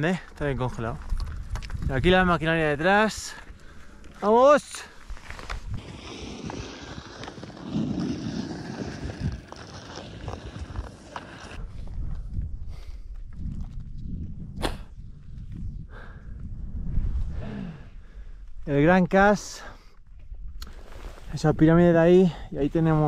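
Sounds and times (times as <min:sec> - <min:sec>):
skis crunching over snow: 0:00.1 - 0:11.8
wind buffeting microphone: 0:00.4 - 0:03.2, 0:05.5 - 0:18.5.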